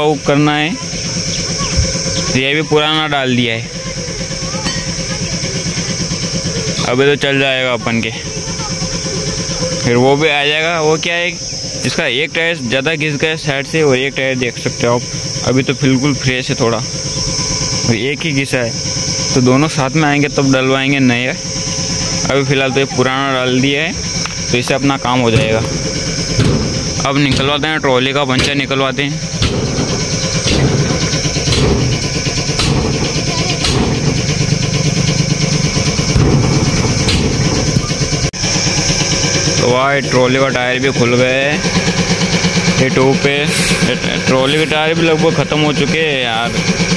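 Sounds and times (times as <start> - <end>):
tractor diesel engine idling: 0.0 - 46.9
hammer knocking on wheel: 25.3 - 38.3.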